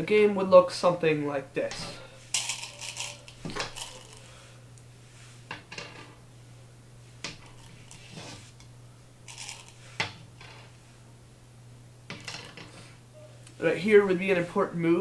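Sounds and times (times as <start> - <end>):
stones rattling in bowls: 2.3 - 4.2, 9.3 - 9.8.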